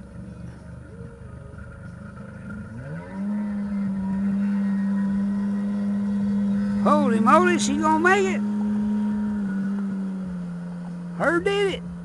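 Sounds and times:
jet ski engine revving: 0.0 - 12.0.

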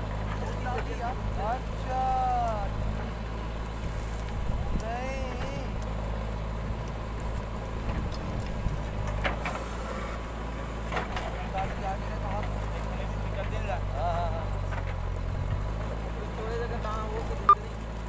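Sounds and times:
diesel engine running under load: 0.0 - 18.0.

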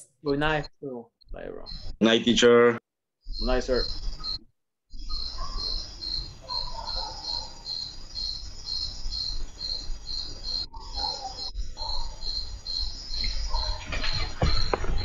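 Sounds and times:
cricket chirping: 1.3 - 2.3, 3.2 - 15.0.

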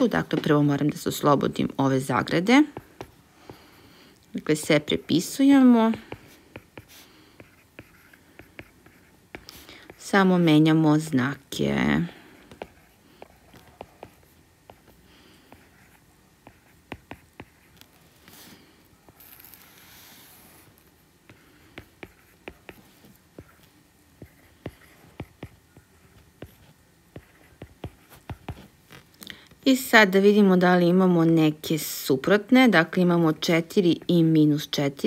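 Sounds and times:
stylus scratching on tablet: 0.8 - 3.7, 4.4 - 29.1
stylus tapping on drawing tablet: 2.6 - 3.6, 15.5 - 17.7, 24.2 - 25.6.

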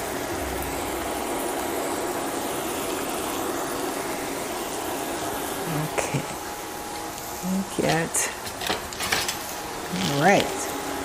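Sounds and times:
onions sizzling in oil: 0.0 - 11.0.

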